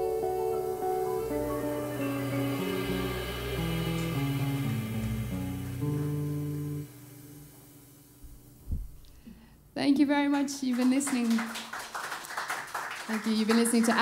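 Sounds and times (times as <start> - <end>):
jazz quartet playing: 0.0 - 8.2.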